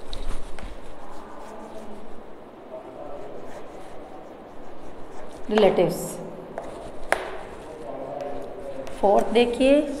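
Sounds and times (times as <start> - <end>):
chalk strokes on blackboard: 0.0 - 6.0, 6.6 - 9.3
chalk tapping on blackboard: 3.2 - 5.9, 6.6 - 9.3.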